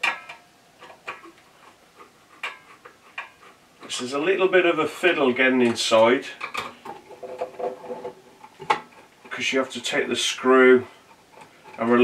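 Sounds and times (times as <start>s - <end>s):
screwdriver scraping and tapping: 11.0s - 11.9s.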